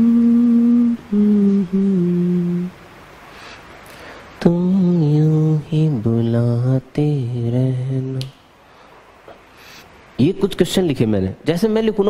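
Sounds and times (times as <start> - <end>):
man humming: 0.0 - 2.9, 4.4 - 8.3.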